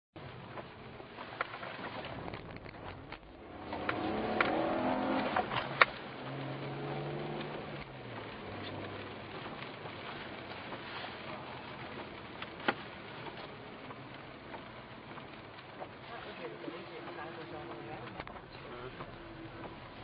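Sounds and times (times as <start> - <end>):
car engine revving: 1.2 - 14.5.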